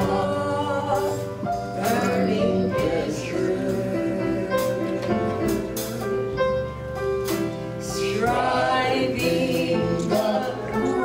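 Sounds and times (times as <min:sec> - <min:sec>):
man and woman singing gospel: 0:00.0 - 0:06.0, 0:07.8 - 0:11.0
low musical accompaniment: 0:00.0 - 0:11.0.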